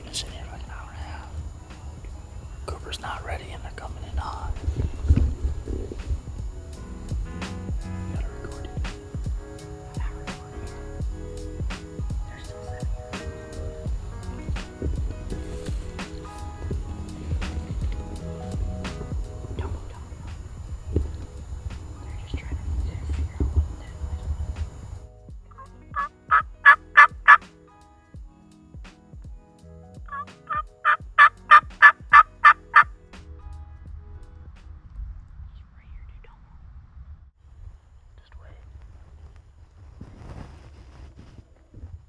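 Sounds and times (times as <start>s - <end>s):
background music: 0.0s - 35.0s
wild turkey gobbling: 25.6s - 27.4s, 30.1s - 32.9s.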